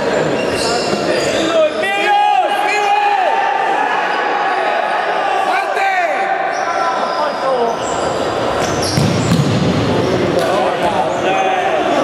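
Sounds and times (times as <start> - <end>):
shoe squeaks on wooden court: 0.2 - 1.6, 6.5 - 10.3
players shouting: 0.8 - 12.0
ball kicked and bouncing: 8.9 - 9.6.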